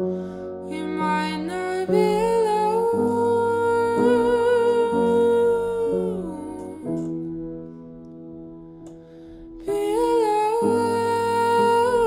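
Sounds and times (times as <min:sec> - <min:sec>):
soft piano chords: 0:00.0 - 0:12.0.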